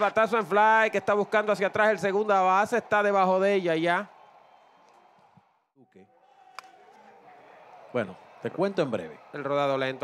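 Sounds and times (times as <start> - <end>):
faint ballpark broadcast: 0.0 - 10.0.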